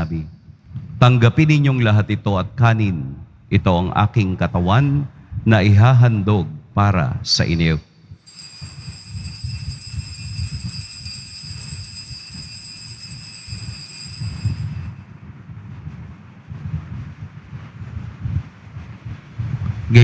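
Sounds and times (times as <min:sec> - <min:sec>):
altar bells ringing: 0:08.2 - 0:15.1
low rumble: 0:13.5 - 0:20.0.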